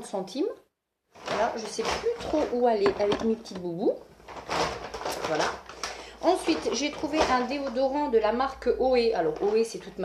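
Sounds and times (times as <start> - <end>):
items rustling in a bag: 1.1 - 8.4.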